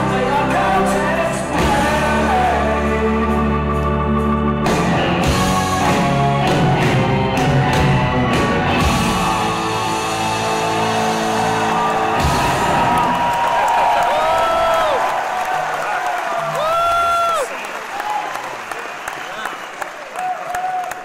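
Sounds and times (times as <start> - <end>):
rock band closing chord: 0.0 - 13.6
audience cheering and applauding: 5.3 - 21.0
whooping: 9.0 - 21.0.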